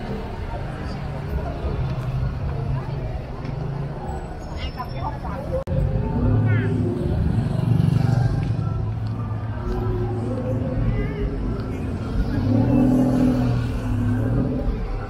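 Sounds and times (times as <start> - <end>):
car and motorbike engines humming: 0.0 - 15.0
chatter of passers-by: 0.0 - 15.0.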